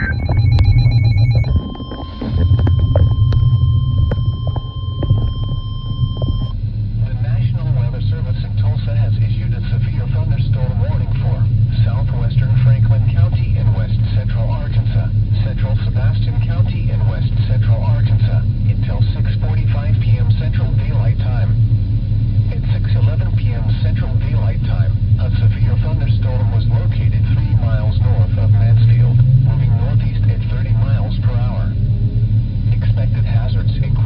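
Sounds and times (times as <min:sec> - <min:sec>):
electronic alert tone: 0:00.0 - 0:06.6
indistinct broadcast voice: 0:00.0 - 0:21.6, 0:22.5 - 0:31.8, 0:32.7 - 0:34.0
low rumble inside a car: 0:00.0 - 0:34.0.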